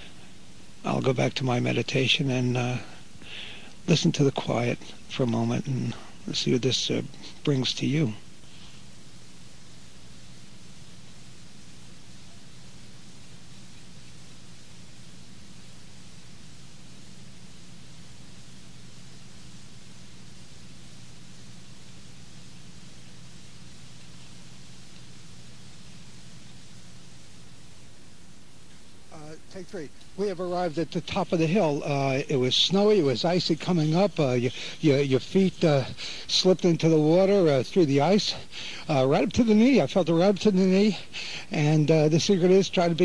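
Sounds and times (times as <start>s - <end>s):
low hum: 0.0s - 39.2s
steady hiss: 0.0s - 43.0s.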